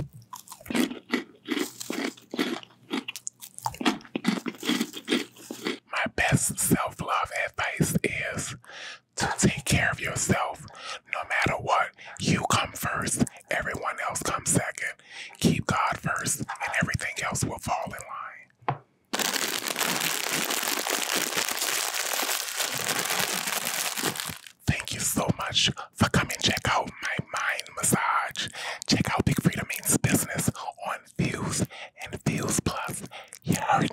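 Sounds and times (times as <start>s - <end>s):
snack bag crinkling: 0.0s - 5.8s, 19.1s - 25.5s, 32.3s - 33.9s
person whispering: 5.9s - 18.5s, 24.6s - 33.9s.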